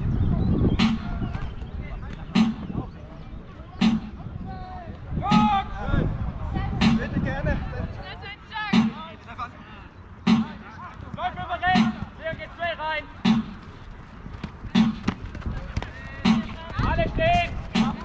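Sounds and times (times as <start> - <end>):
drum beats: 0.8 - 1.2, 2.3 - 2.8, 3.8 - 4.2, 5.3 - 5.6, 6.8 - 7.1, 8.7 - 9.1, 10.3 - 10.6, 11.2 - 12.4, 13.2 - 13.7, 14.6 - 18.0
players shouting: 3.8 - 5.9, 9.8 - 13.7.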